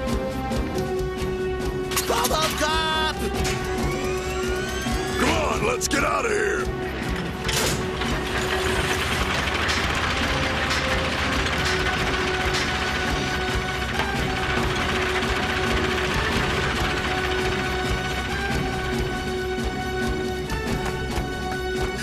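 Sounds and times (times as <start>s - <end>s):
heavy military vehicles moving: 0.0s - 22.0s
loud mechanical clatter: 3.3s - 5.2s, 6.9s - 22.0s.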